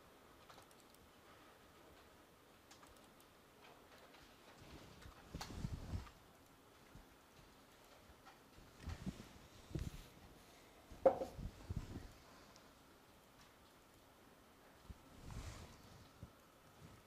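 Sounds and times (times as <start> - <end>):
computer mouse clicks: 0.4 - 1.1, 2.7 - 3.3
low thumps on desk: 11.0 - 11.4.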